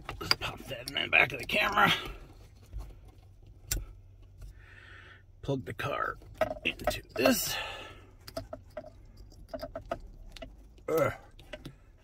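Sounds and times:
wires rustling: 0:06.0 - 0:12.0.

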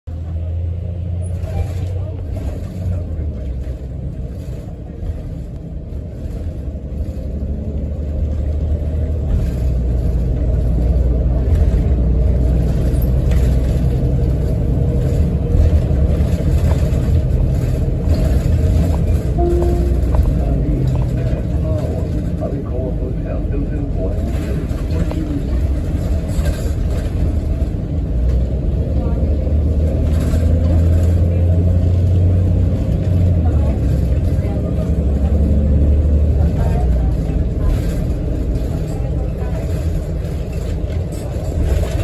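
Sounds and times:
bus engine and road rumble: 0:00.0 - 0:42.0.

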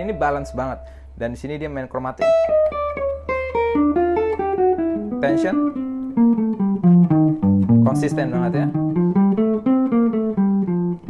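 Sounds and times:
jazz guitar single-note line: 0:00.0 - 0:11.0.

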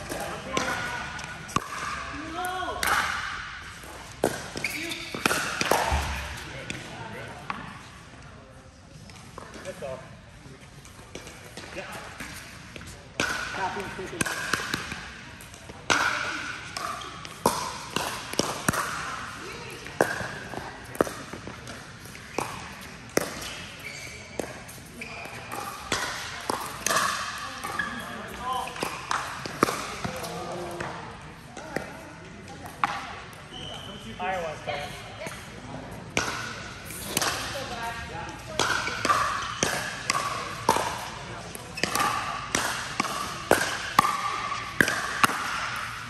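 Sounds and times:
ball bouncing on court: 0:00.0 - 0:07.8, 0:11.1 - 0:33.8, 0:36.1 - 0:46.0.

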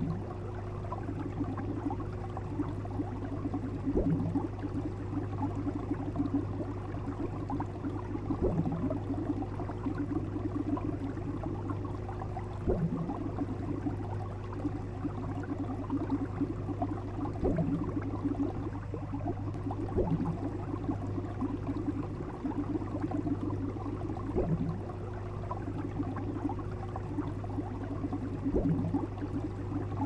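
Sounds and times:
aquarium bubbles burbling: 0:00.0 - 0:30.0
steady low hum: 0:00.0 - 0:30.0.

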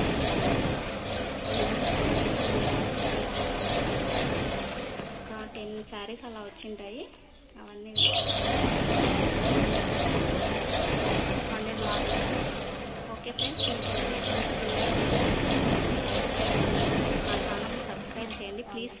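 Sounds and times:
sewing machine running: 0:00.0 - 0:05.8, 0:08.0 - 0:19.0.

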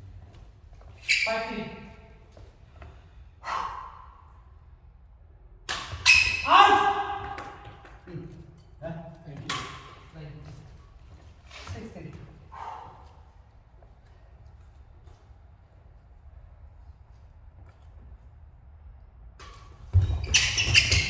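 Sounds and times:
rackets striking shuttlecock: 0:05.6 - 0:08.0, 0:09.4 - 0:10.0
players' raised voices: 0:06.4 - 0:07.6.

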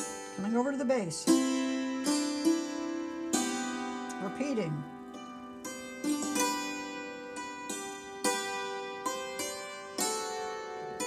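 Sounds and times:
hammered dulcimer strikes: 0:00.0 - 0:11.0.

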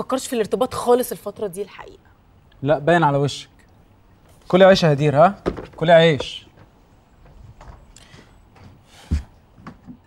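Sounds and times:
light knocks and taps: 0:05.4 - 0:10.0.

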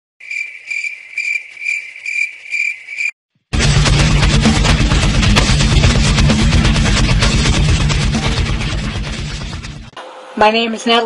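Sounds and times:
crickets chirping: 0:00.2 - 0:03.2
guitar rock music: 0:03.5 - 0:09.9.

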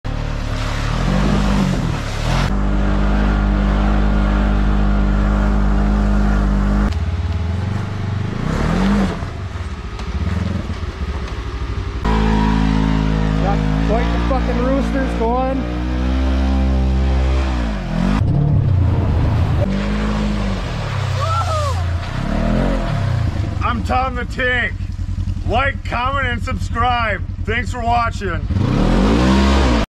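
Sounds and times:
engines revving through mud: 0:00.1 - 0:29.9.

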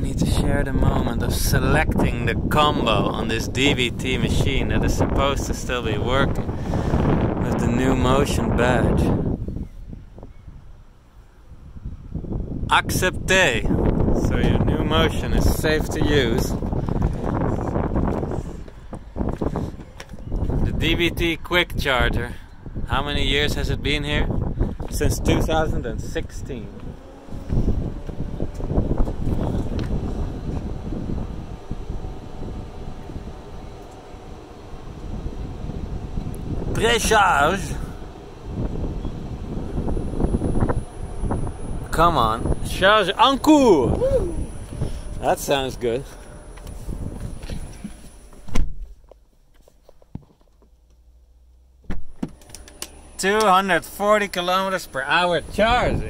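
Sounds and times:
wind buffeting microphone: 0:00.0 - 0:48.9, 0:52.0 - 0:56.0
low thump: 0:51.8 - 0:52.4.

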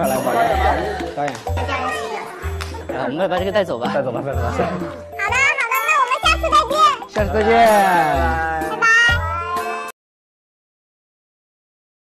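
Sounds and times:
background music: 0:00.0 - 0:10.0
high-pitched voice saying bye: 0:08.6 - 0:09.9.

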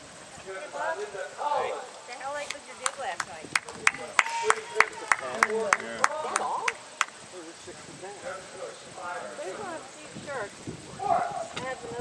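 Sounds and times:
people talking: 0:00.4 - 0:12.0.

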